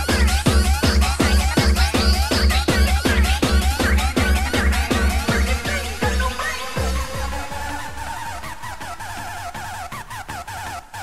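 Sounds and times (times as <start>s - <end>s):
hard dance music: 0.0s - 11.0s
pounding kick drum: 0.0s - 11.0s
warbling synth riff: 0.0s - 11.0s.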